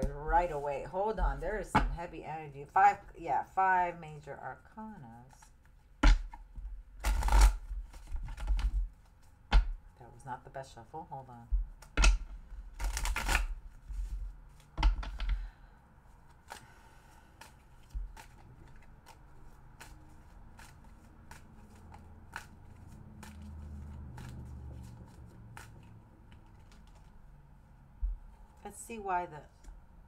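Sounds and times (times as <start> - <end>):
cards clicking and tapping: 11.7 - 15.6, 17.4 - 27.2
cards riffle shuffled: 16.2 - 27.2.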